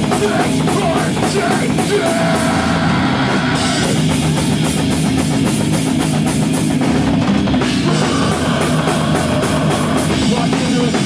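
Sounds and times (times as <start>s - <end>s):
fast dense drumming: 0.0s - 11.0s
heavy guitars and bass: 0.0s - 11.0s.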